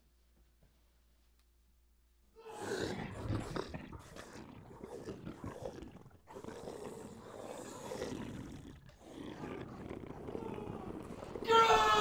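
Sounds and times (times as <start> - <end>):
low rasping growl: 2.4 - 11.6.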